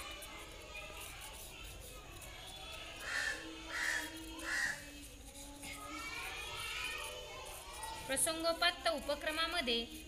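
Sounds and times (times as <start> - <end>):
crow cawing: 3.0 - 4.8.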